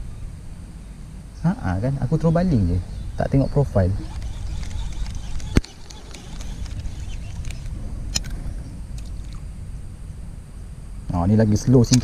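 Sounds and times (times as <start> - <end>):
wind rumble on microphone: 0.0 - 12.0
fishing reel click: 4.0 - 8.4.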